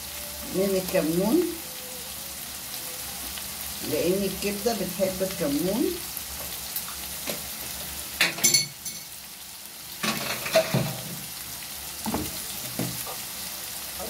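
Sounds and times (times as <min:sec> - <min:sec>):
food sizzling in oil: 0:00.0 - 0:14.0.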